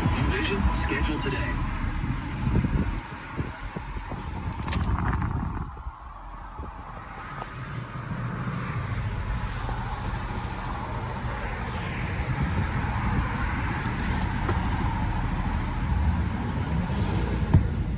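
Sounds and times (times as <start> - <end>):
truck engine running: 0.0 - 17.9.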